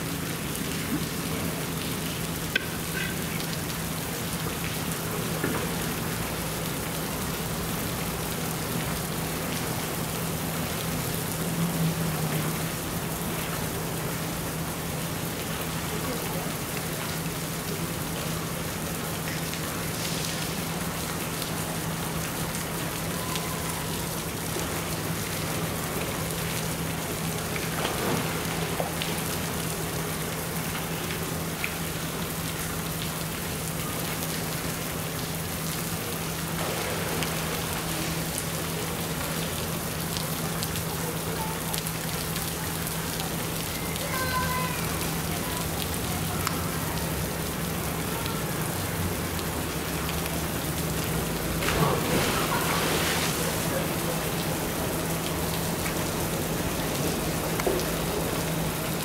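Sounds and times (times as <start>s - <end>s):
water splashing: 24.3s - 31.8s, 35.4s - 40.8s, 49.4s - 59.0s.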